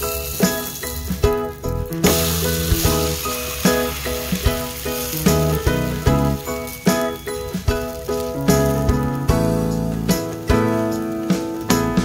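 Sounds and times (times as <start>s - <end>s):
batter sizzling in hot oil: 0.0s - 12.0s
music with plucked notes: 0.0s - 12.0s.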